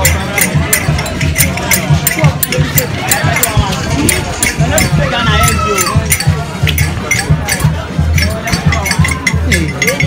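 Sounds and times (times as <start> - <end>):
music with quick drumbeat and bass: 0.0 - 10.0.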